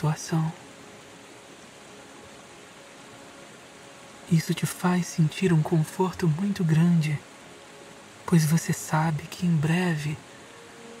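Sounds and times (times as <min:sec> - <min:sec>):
soft water hiss: 0:00.0 - 0:11.0.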